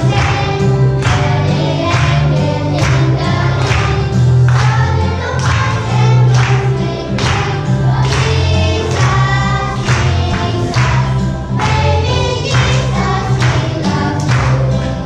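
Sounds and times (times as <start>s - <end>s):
children singing together: 0.0s - 15.0s.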